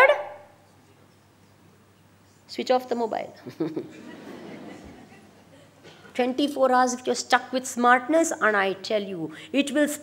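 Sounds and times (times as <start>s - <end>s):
faint low hum: 0.0s - 10.0s
woman speaking: 2.5s - 3.4s, 6.1s - 10.0s.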